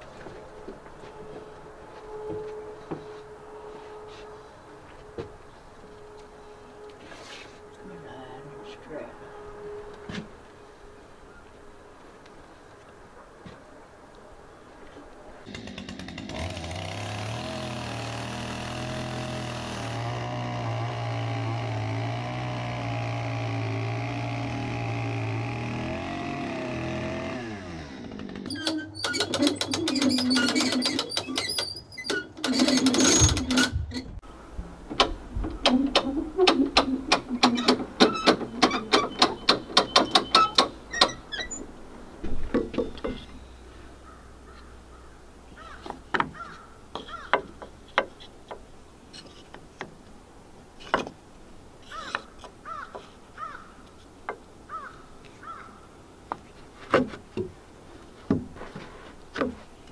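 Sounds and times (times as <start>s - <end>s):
humming drone: 17.6s - 28.2s
hand winch ratcheting: 28.1s - 34.1s, 35.0s - 41.6s.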